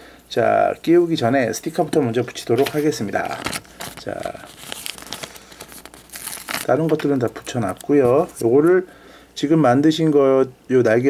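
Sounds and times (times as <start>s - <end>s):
sticker peeling off backing: 2.5s - 8.7s
sticker sheet crinkling: 2.5s - 8.7s.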